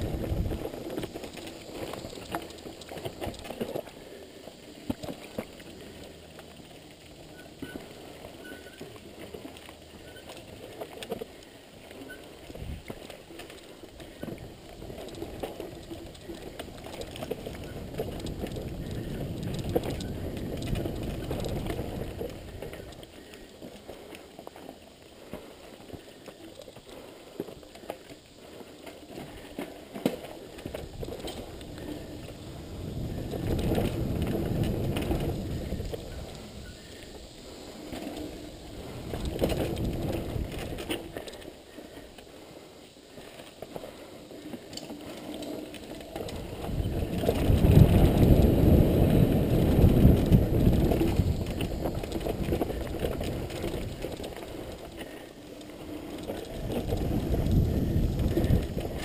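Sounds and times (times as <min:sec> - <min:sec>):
bike rattles and clicks: 0:00.0 - 0:59.0
bike tyres rumbling on dirt: 0:00.0 - 0:59.0.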